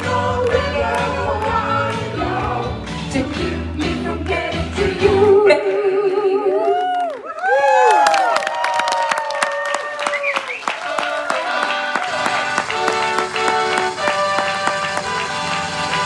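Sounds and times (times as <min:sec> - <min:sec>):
audience clapping: 0:00.0 - 0:05.0, 0:06.6 - 0:16.0
crowd noise: 0:08.3 - 0:16.0.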